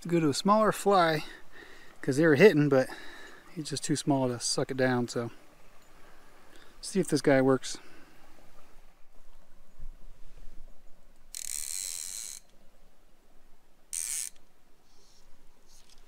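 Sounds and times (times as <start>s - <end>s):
fly reel ratchet buzzing: 11.3s - 12.6s, 13.9s - 15.2s.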